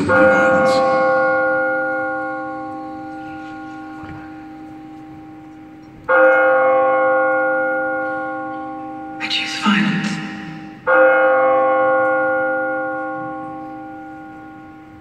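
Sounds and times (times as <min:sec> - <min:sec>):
deep bell tolling: 0:00.0 - 0:15.0.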